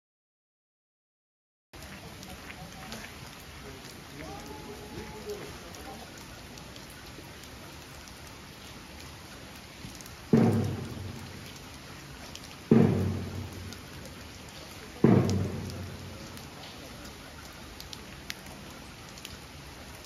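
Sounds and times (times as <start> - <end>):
steady rain: 1.8 - 20.0
large drum booming: 10.3 - 11.5, 12.7 - 14.0, 15.0 - 16.3.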